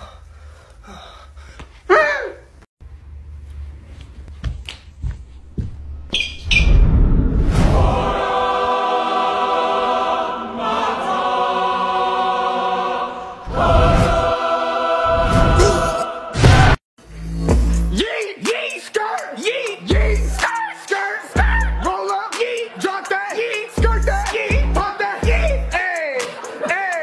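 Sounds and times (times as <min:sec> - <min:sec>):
choir-like held chord: 0:07.7 - 0:16.8
sliding vocal sound: 0:13.1 - 0:27.0.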